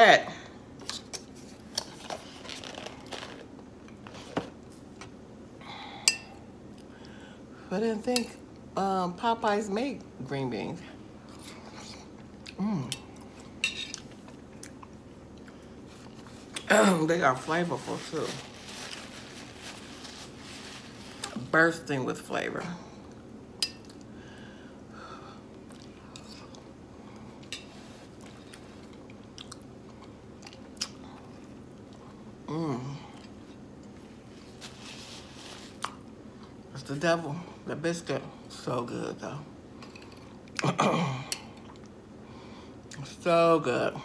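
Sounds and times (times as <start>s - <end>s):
soft eating sounds: 0.7s - 5.2s, 10.9s - 21.5s, 22.6s - 36.7s, 39.5s - 43.2s.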